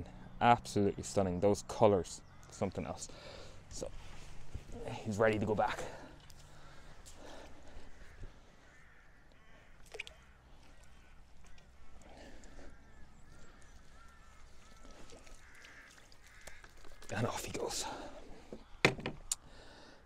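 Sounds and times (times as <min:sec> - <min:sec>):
distant bird calls: 0:00.0 - 0:20.0.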